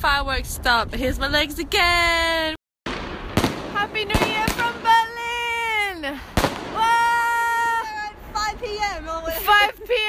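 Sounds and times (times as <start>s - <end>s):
firework bang: 2.9s - 5.4s, 6.2s - 7.8s.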